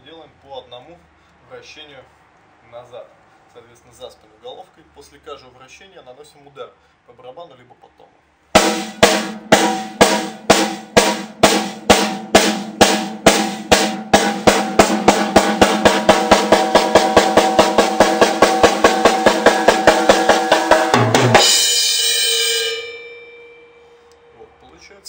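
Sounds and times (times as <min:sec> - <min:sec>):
cymbal crash with kick drum: 0:08.5 - 0:24.0.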